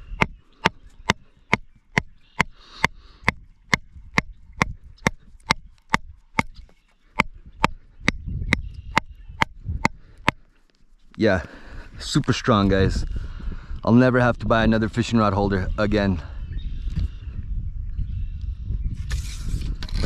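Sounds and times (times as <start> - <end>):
branch hammering a metal rod: 0.2 - 2.5.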